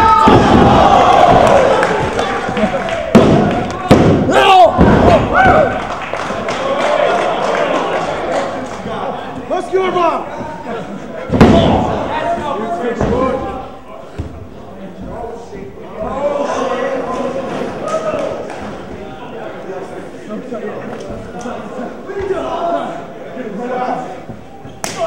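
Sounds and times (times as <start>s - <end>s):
crowd shouting: 0.0s - 13.6s.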